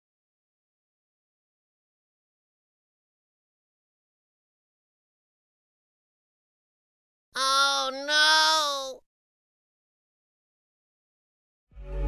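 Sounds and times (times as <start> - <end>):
drawn-out voice-like call: 7.4 - 9.0.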